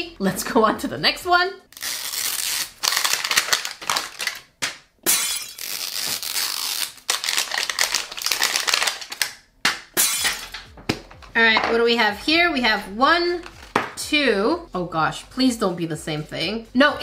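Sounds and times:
plastic and paper crinkling: 1.8 - 4.6, 5.6 - 9.4.

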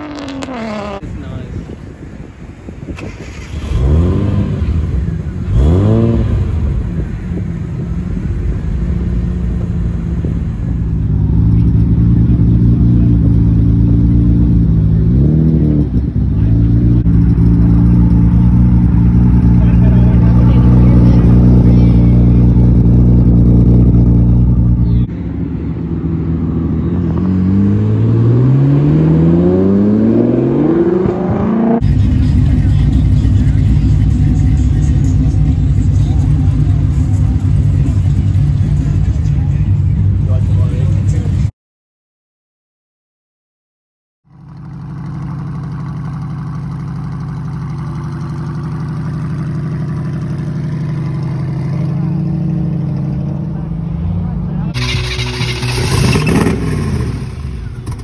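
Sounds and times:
car exhaust revving up: 0.0 - 1.3, 3.0 - 39.0, 54.6 - 58.0
car engine idling: 4.6 - 27.2, 31.8 - 41.5, 44.3 - 58.0
engine idling steadily: 16.0 - 27.0, 31.8 - 41.5, 44.3 - 58.0.

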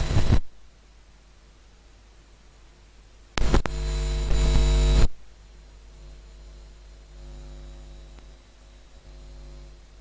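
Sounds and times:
electrical mains hum: 0.0 - 10.0
sharp clicks: 3.4 - 4.7.

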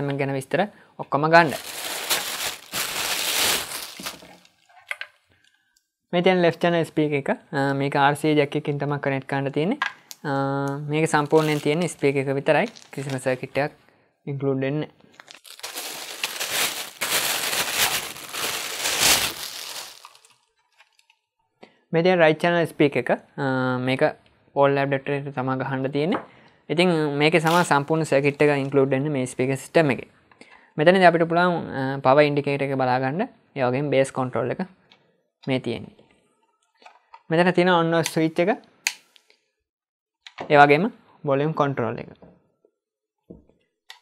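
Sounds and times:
person speaking: 0.0 - 4.4, 6.2 - 20.3, 24.8 - 29.8
plastic bag crinkling: 1.4 - 4.7, 11.0 - 13.7, 15.1 - 21.1, 27.4 - 28.6.

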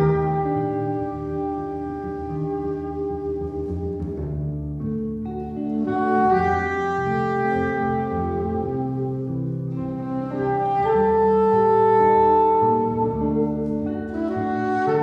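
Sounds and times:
double bass: 0.0 - 15.0
guitar: 0.0 - 15.0
saxophone melody: 0.0 - 15.0.

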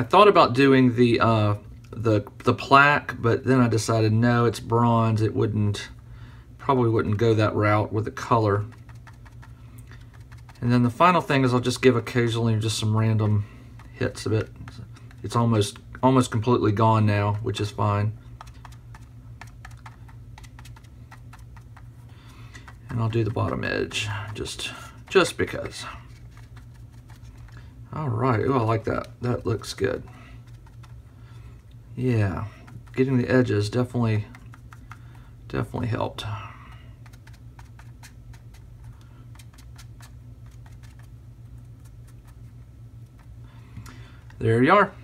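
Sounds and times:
steady low hum: 0.0 - 45.0
sponge dabbing taps and clicks: 8.0 - 27.7, 28.4 - 31.0, 31.6 - 35.3, 36.6 - 44.4.

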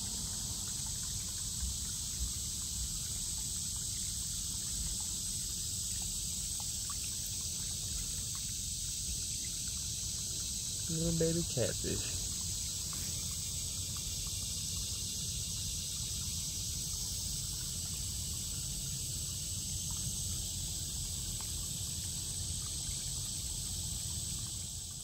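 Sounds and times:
high-pitched insect drone: 0.0 - 25.0.

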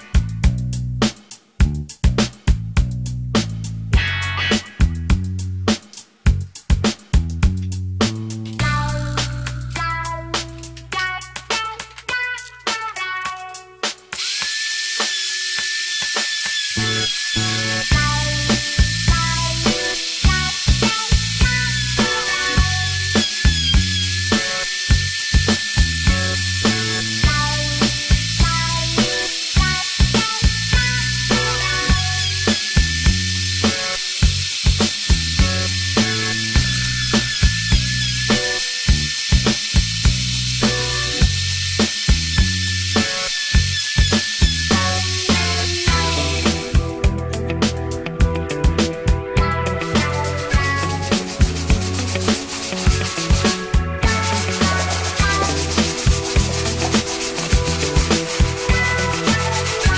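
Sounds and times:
background music with beat: 0.0 - 59.9
electric router whining: 13.8 - 48.2, 49.5 - 59.9.

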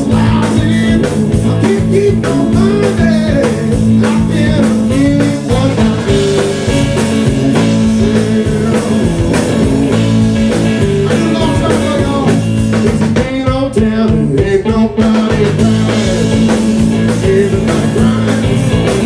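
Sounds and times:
lead guitar bending notes: 0.0 - 13.2, 15.5 - 19.0
bass guitar: 0.0 - 19.0
drum kit steady beat: 0.0 - 19.0.

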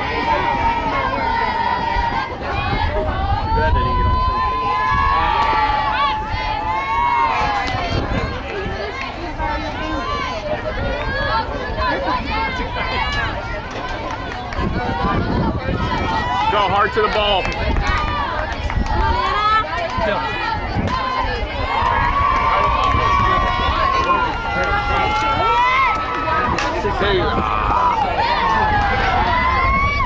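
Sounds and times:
people shouting and cheering: 0.0 - 30.0.

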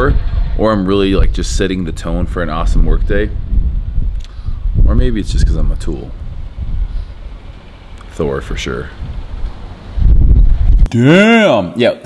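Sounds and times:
wind buffeting microphone: 0.0 - 10.9
click: 4.1 - 4.4.

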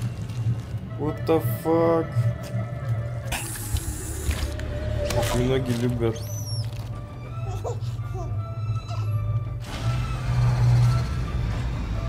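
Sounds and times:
spaceship engines droning: 8.4 - 12.0.

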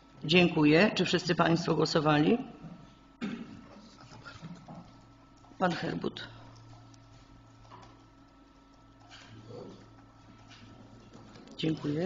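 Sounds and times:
faint murmur in room: 9.0 - 12.0.

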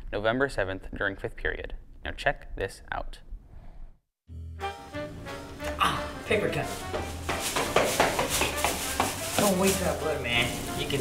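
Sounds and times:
footsteps down hard stairs: 6.8 - 9.8.

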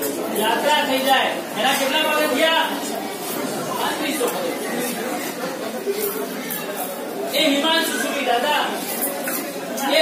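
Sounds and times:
murmured chatter: 0.0 - 10.0.

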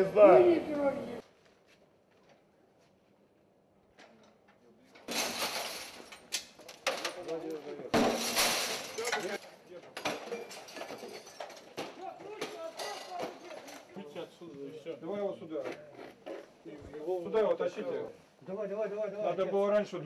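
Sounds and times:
glass clattering and tinkling: 5.1 - 9.4, 10.0 - 11.8
window glass smashing: 5.1 - 9.4, 10.0 - 12.0.

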